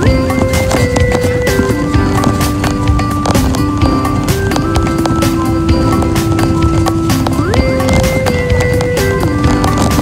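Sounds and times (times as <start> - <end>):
busy clattering beat: 0.0 - 10.0.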